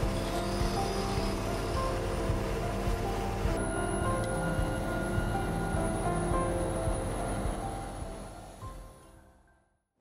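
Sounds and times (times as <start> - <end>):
background music: 0.0 - 9.8.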